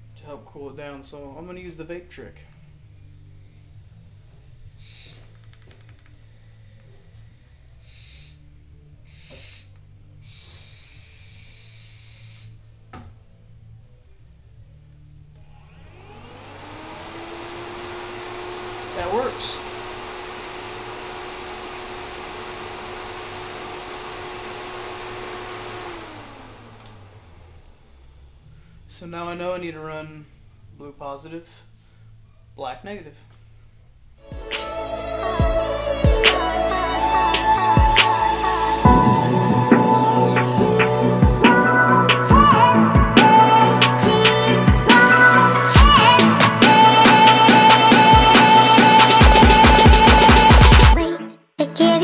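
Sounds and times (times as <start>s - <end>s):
electric fan whining: 0.0s - 31.0s, 33.4s - 51.0s.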